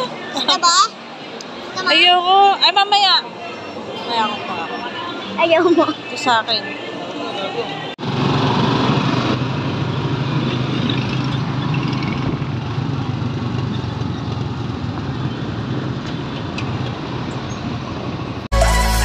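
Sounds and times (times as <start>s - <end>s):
road noise: 0.0s - 19.0s.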